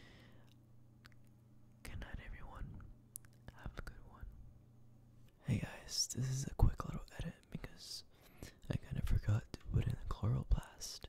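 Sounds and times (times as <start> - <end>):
person whispering: 1.8 - 4.4, 5.4 - 11.0.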